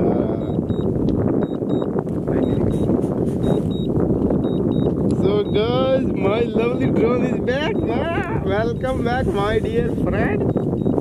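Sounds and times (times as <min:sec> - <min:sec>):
wind on microphone: 0:00.0 - 0:11.0
short high beeps: 0:00.4 - 0:05.8, 0:07.6 - 0:09.0.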